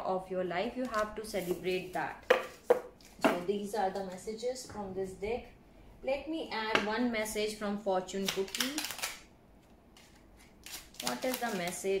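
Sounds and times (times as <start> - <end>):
cards being handled: 10.0 - 12.0.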